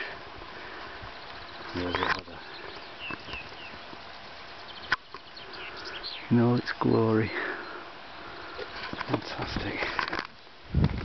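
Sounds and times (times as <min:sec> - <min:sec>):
small birds chirping: 0:00.0 - 0:10.7
outdoor background hiss: 0:00.0 - 0:11.0.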